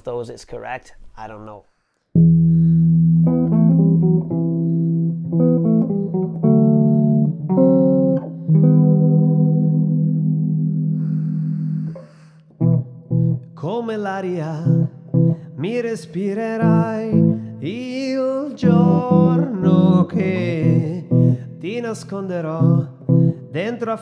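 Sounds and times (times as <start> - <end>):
electric bass notes: 2.2 - 12.0, 12.6 - 13.6, 14.7 - 15.6, 16.6 - 17.6, 18.6 - 23.6
person singing: 13.6 - 24.0.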